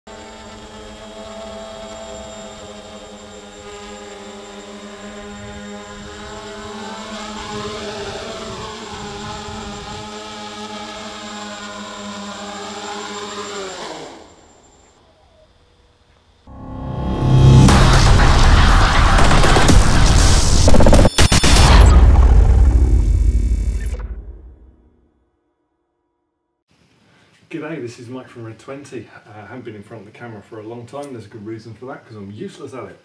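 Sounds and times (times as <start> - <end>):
drone motors humming: 0.1 - 24.7.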